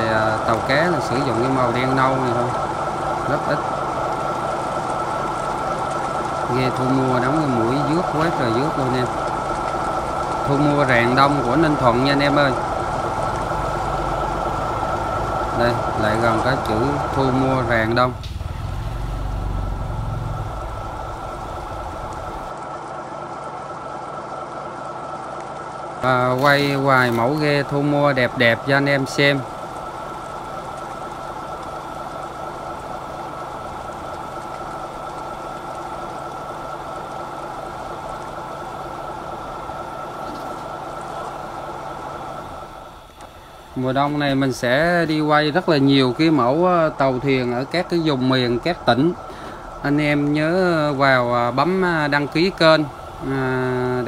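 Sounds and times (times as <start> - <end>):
boat engine running: 0.0 - 54.0
steady high tone: 49.8 - 54.0.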